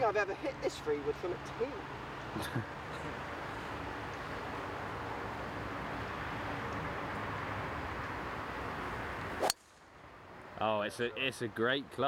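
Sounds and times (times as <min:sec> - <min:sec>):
outdoor background noise: 0:00.0 - 0:12.0
golf club striking ball: 0:09.4 - 0:09.8.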